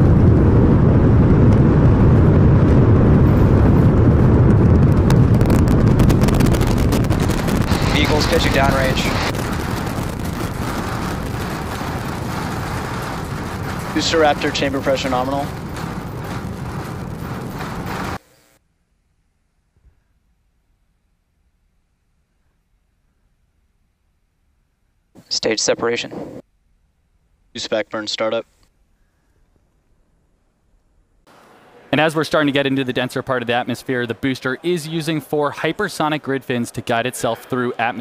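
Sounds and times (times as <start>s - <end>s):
rocket engines roaring: 0.0s - 18.2s
sharp crackling: 0.0s - 18.6s.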